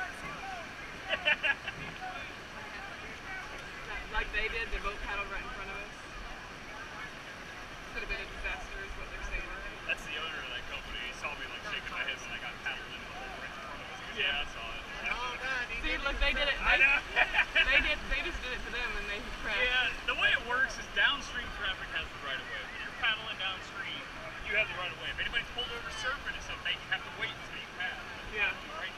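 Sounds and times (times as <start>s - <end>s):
people talking and calling out: 0.0s - 28.9s.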